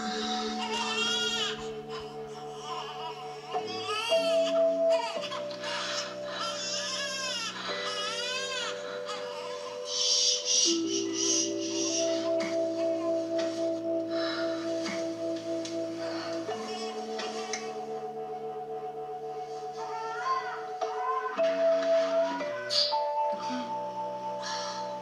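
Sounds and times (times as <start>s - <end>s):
baby crying: 0.0s - 13.1s, 19.8s - 23.8s
held music chords: 0.0s - 25.0s.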